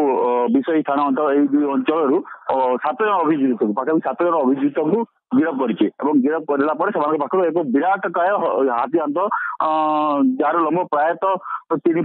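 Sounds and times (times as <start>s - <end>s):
man giving news report: 0.0s - 12.0s.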